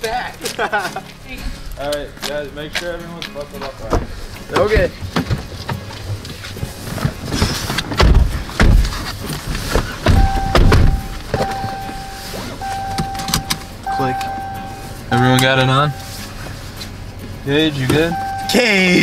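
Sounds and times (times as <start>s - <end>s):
people settling into car seats: 3.8s - 17.0s
car warning chime: 10.1s - 16.4s, 17.8s - 19.0s.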